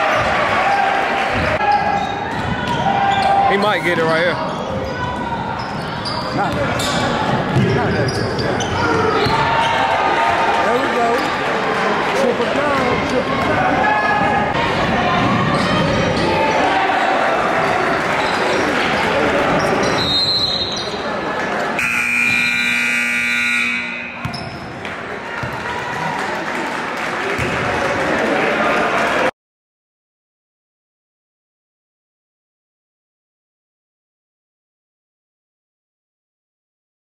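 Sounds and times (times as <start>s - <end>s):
crowd voices: 0.0s - 29.3s
scoreboard buzzer: 21.8s - 24.4s
basketball bouncing: 24.1s - 25.6s.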